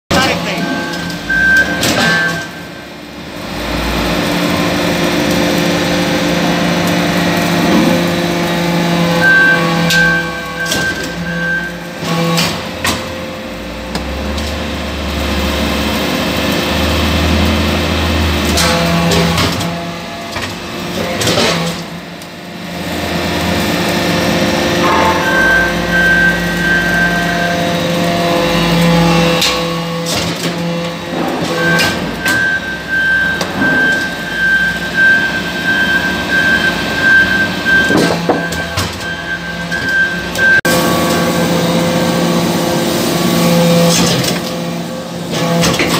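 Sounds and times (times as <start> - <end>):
pump and motor hum: 0.1 - 24.7
sharp metallic knocks: 24.8 - 27.0.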